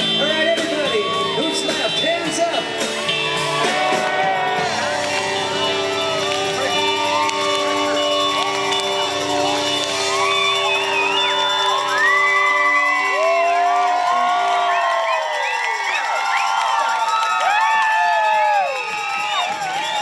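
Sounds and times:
rock band held chord: 0.0s - 14.2s
crowd cheering and shouting: 0.0s - 20.0s.

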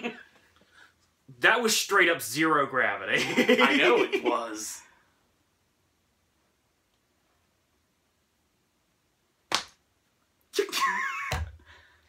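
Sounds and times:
hand slap: 9.5s - 9.8s, 11.3s - 11.6s.

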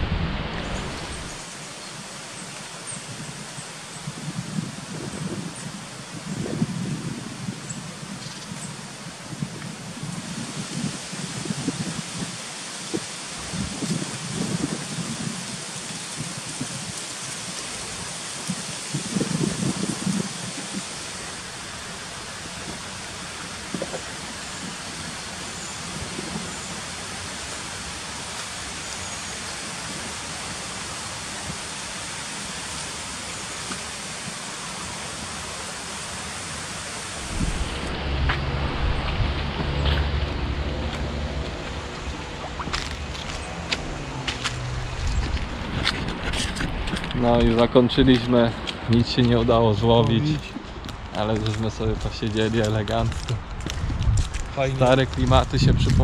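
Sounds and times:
steady hiss: 0.0s - 38.0s
squirrel rustling through dry leaves: 0.7s - 49.4s.

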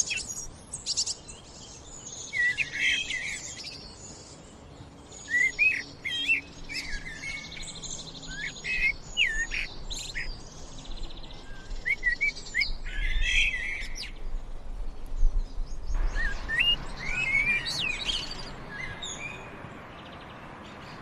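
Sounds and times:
blackbird singing: 0.0s - 14.4s, 15.0s - 21.0s.

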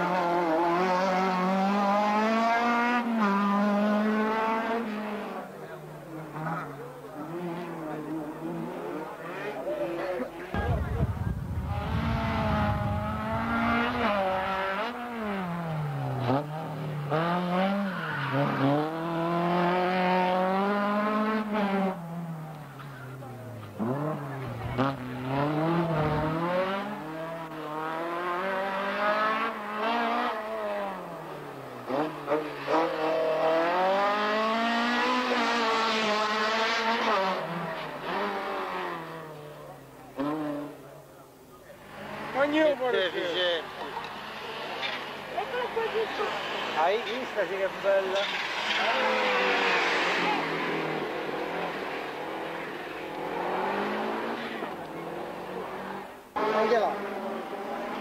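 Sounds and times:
race car engines revving: 0.0s - 58.0s.

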